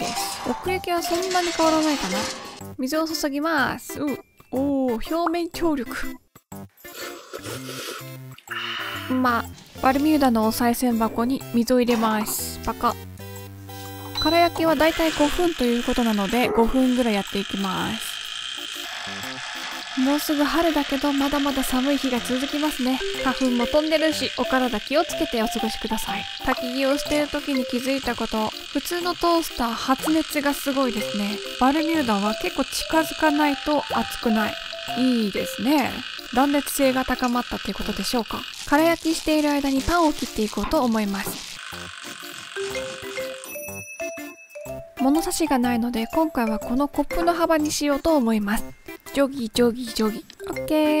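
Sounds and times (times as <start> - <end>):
light background music: 0.0 - 51.0.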